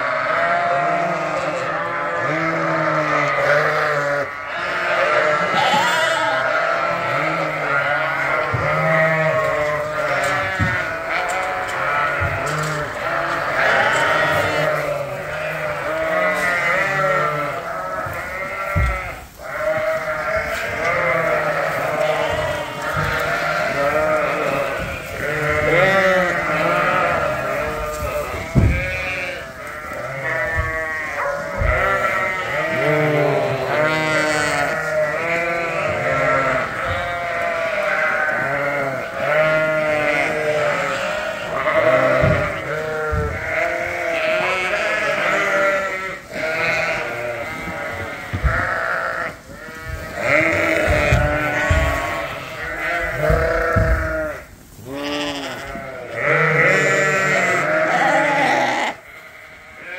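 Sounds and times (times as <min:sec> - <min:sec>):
sheep and lambs bleating: 0:00.0 - 0:59.9
dull thumps: 0:27.7 - 0:29.0, 0:49.8 - 0:54.3.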